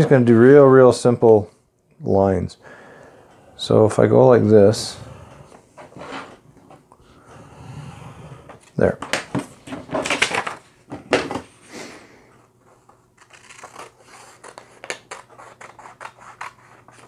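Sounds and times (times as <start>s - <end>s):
paper rustling: 12.7s - 17.0s.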